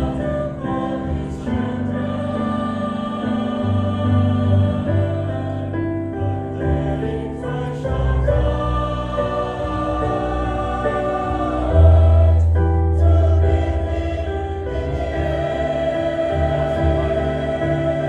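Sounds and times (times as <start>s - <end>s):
choir singing gospel: 0.0s - 18.0s.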